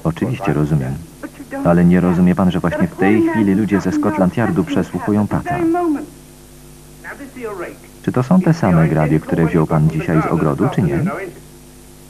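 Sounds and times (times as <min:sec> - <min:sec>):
film dialogue: 0:00.0 - 0:11.6
tape hum and hiss: 0:00.0 - 0:12.0.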